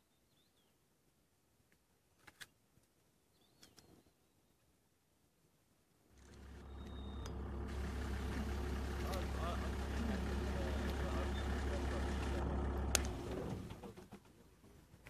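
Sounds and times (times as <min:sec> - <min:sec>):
vehicle engine idling: 0:06.2 - 0:14.1.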